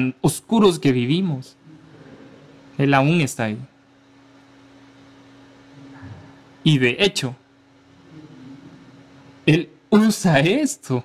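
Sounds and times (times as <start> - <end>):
low hum: 1.4 - 10.2.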